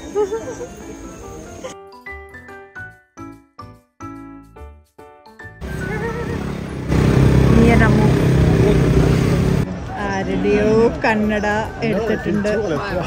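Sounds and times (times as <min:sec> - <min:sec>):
loud noisy background: 0:05.6 - 0:10.0
people's voices: 0:05.9 - 0:13.0.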